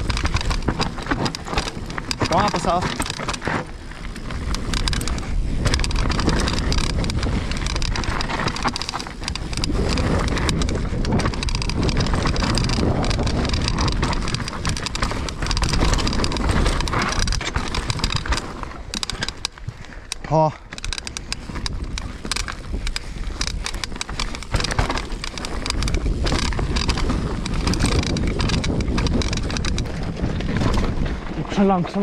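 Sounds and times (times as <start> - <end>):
wind on microphone: 0.0 - 19.8, 20.8 - 32.0
bike rattling and knocking: 0.0 - 32.0
bike tyres on dirt trail: 0.0 - 32.0.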